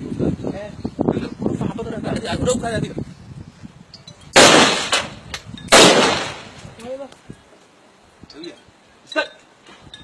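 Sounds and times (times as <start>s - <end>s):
rifle shots with echo: 4.4s - 6.6s.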